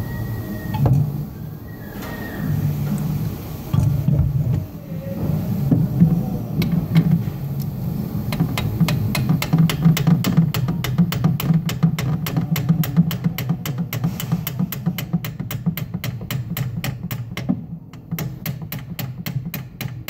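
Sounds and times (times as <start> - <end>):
steady low hum: 0.0 - 19.8
hammer tapping on metal: 8.3 - 20.0.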